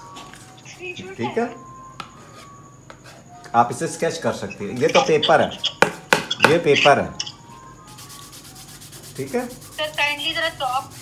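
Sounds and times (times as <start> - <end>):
scratchy rubbing on canvas: 7.9 - 11.0.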